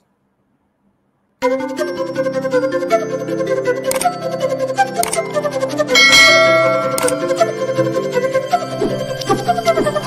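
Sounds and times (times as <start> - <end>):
background music with plucked notes: 1.4 - 10.0
bright bell chime: 5.9 - 7.6.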